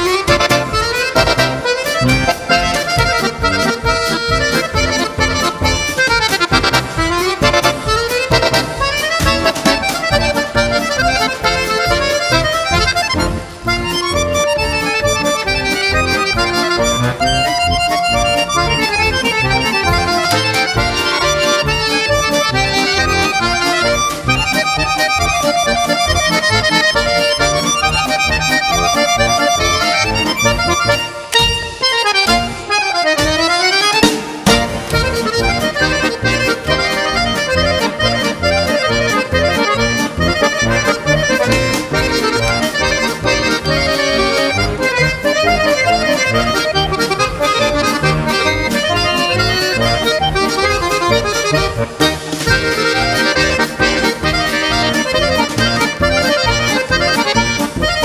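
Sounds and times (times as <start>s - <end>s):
accordion music: 0.0s - 58.0s.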